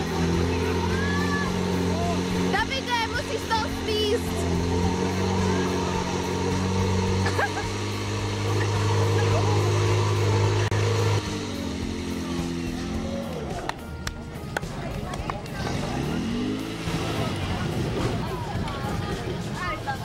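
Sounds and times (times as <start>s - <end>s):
pump engine running: 0.0s - 19.4s.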